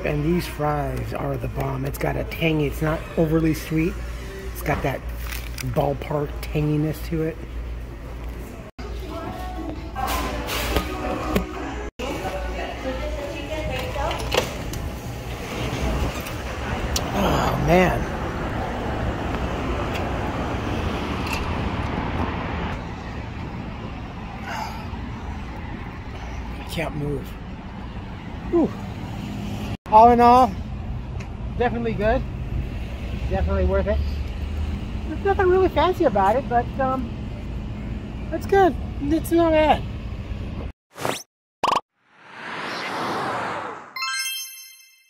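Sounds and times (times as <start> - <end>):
road traffic rumble: 0.0 - 40.7
whoosh: 42.0 - 44.0.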